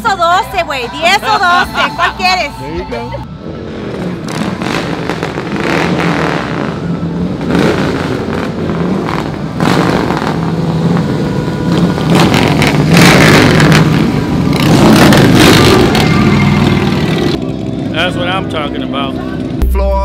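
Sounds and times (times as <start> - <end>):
motorcycle engines running: 3.2 - 19.6.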